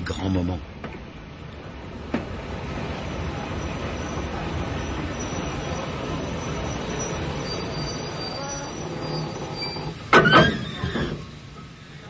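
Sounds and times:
train wheels rumbling: 0.0 - 12.0
wheels squealing on rails: 2.2 - 12.0.

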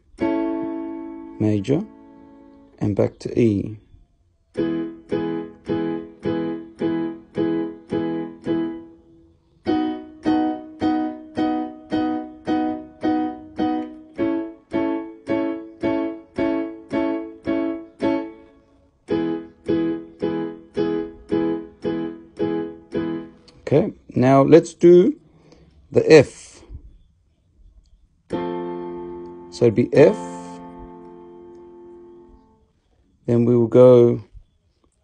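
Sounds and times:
electronic keyboard chords: 0.0 - 3.8, 4.4 - 25.3, 27.8 - 34.2.

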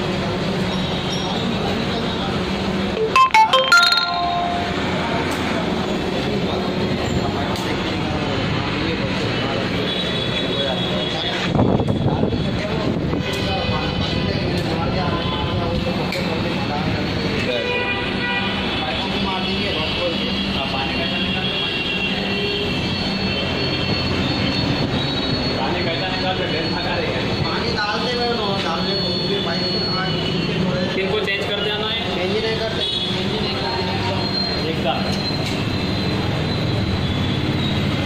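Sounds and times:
steady background noise: 0.0 - 38.0
short ringing chime: 3.0 - 5.1.

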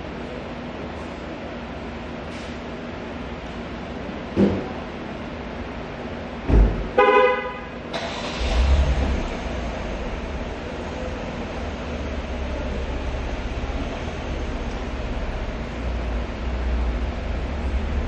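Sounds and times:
vehicle horn: 7.0 - 7.8
vehicle engine rumble: 7.6 - 18.0.

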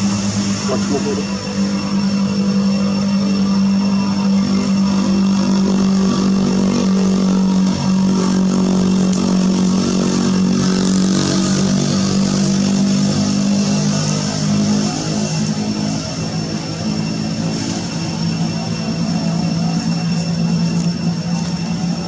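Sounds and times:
engine droning: 0.0 - 22.0.

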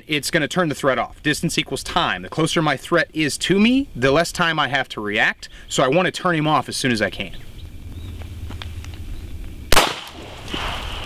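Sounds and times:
pistol shot: 9.7 - 11.0.

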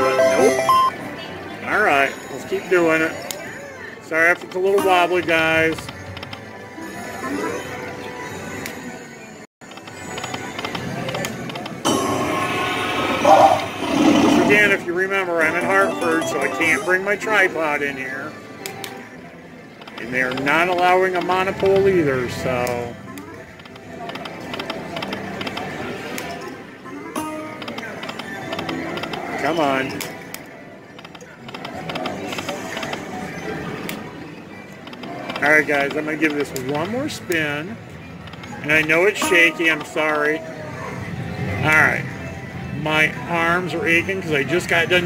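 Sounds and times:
slot machine reel-spin music: 0.0 - 1.2, 9.9 - 18.2, 38.7 - 40.2
slot machine chimes: 0.0 - 1.3, 14.5 - 18.0, 38.9 - 40.4
casino background noise: 0.0 - 6.5, 9.6 - 11.9, 12.5 - 45.0
slot machine clicking ticks: 39.1 - 40.1.

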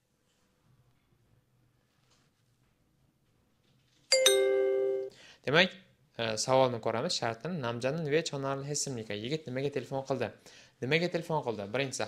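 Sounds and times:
two-note electronic chime: 4.1 - 5.1.

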